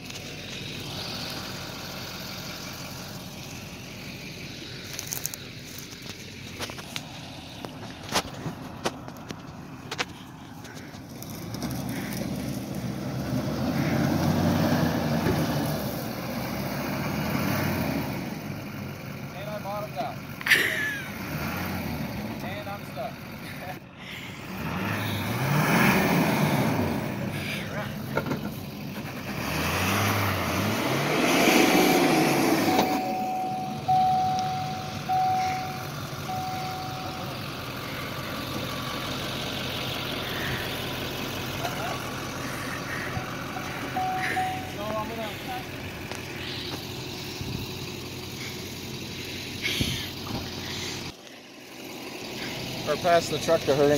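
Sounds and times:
diesel truck engine revving: 0.0s - 53.9s
short even beeps: 32.6s - 37.4s, 44.0s - 44.8s.

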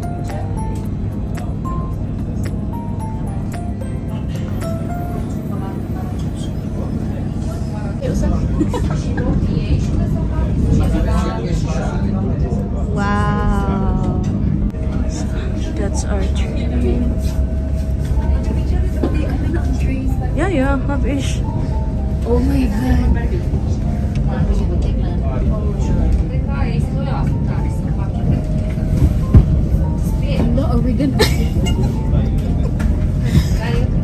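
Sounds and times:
passengers talking: 0.0s - 34.0s
train rumbling: 0.0s - 34.0s.

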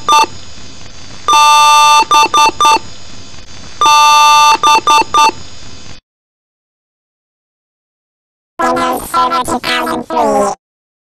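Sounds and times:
computer boot beeps: 0.0s - 0.3s, 1.3s - 2.8s, 3.8s - 5.4s.

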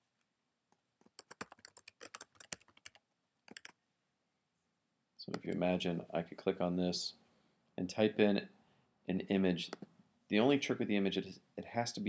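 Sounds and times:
keyboard typing: 1.0s - 3.8s.

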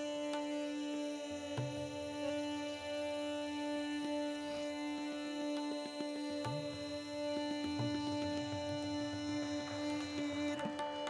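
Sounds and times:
tabla strokes: 0.0s - 11.0s
tanpura drone: 0.0s - 11.0s.

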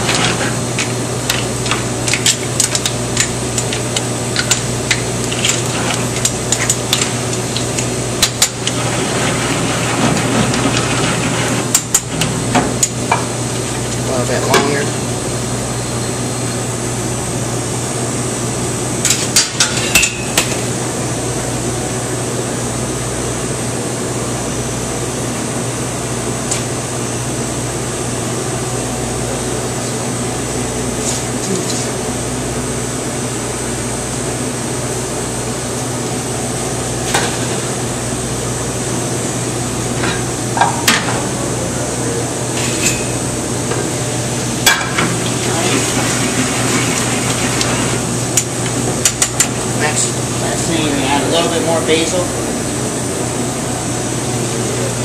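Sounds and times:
kitchen ventilation hum: 0.0s - 55.0s.

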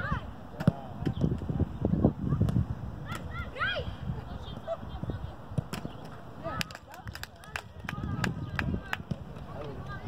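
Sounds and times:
football being kicked: 0.6s - 1.2s
wind on microphone: 0.7s - 10.0s.

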